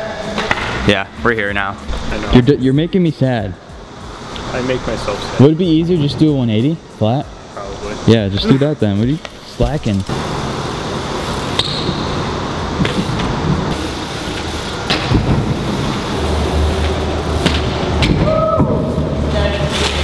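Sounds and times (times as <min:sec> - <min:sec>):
steady low hum: 0:00.6 - 0:20.0
bike tyres rolling on concrete: 0:09.0 - 0:20.0
bike knocking and landing: 0:11.5 - 0:20.0.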